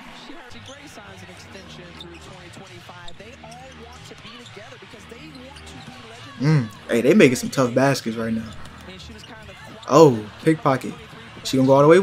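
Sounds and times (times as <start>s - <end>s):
arena crowd: 0.0s - 12.0s
commentator talking: 6.2s - 12.0s.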